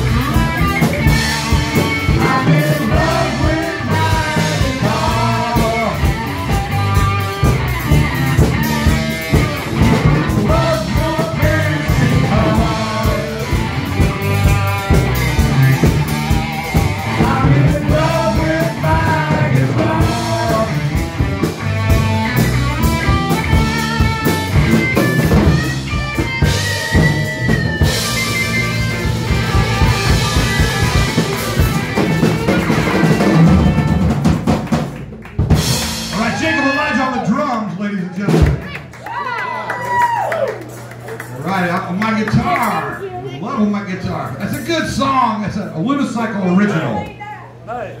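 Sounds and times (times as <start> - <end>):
bending guitar lead line: 0.0 - 34.8
rock band playing: 0.0 - 39.5.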